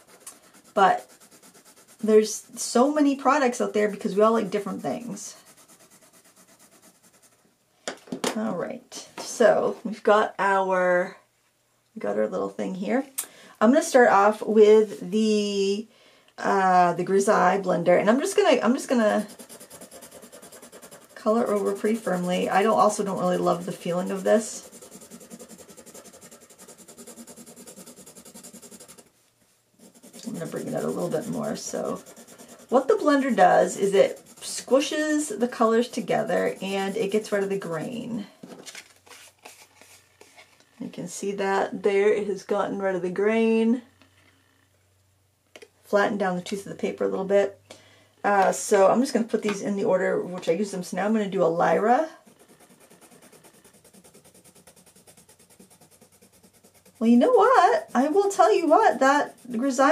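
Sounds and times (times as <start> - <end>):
pencil scratching on paper: 0.0 - 7.4, 18.1 - 29.1, 29.8 - 38.0, 51.8 - 59.9.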